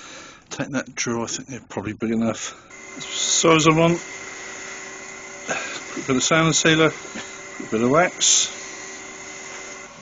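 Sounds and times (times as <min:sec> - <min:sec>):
wood lathe running: 0:02.7 - 0:10.0.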